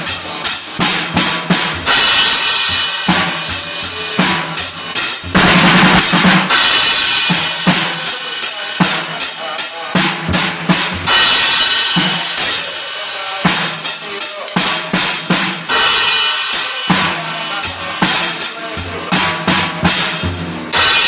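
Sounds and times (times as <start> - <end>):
cymbal crashes: 0.0 - 21.0
drum kit rock groove: 0.0 - 21.0
rock song recording: 0.0 - 21.0.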